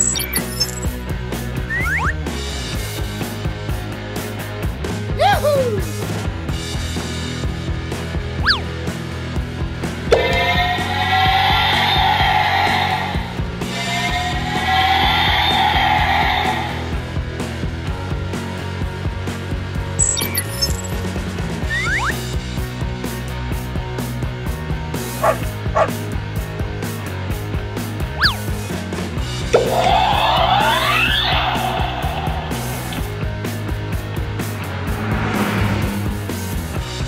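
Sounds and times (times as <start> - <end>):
wavering electronic sound effects: 0.0 - 0.9, 1.7 - 2.1, 20.0 - 20.9, 29.5 - 31.8
background music with steady beat: 0.0 - 37.0
whistle-like pitch glides: 1.6 - 2.2, 8.4 - 8.6, 21.7 - 22.2, 28.2 - 28.4, 29.6 - 31.7.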